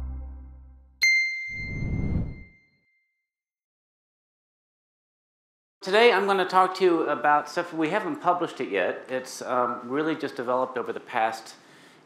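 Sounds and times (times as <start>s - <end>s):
bright chime ringing: 1.0s - 2.6s.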